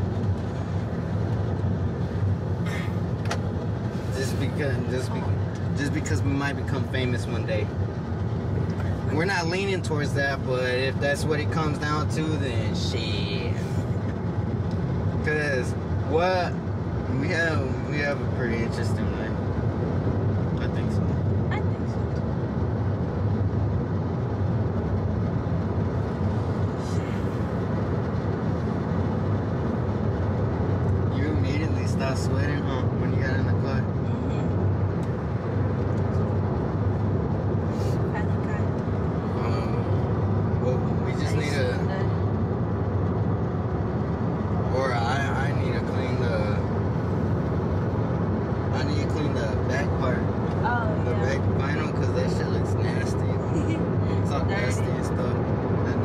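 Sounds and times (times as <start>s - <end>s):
car road and engine rumble: 0.0s - 56.0s
voices: 31.1s - 34.4s, 37.8s - 38.8s, 39.4s - 40.0s, 40.6s - 42.1s, 44.7s - 46.6s, 48.8s - 56.0s.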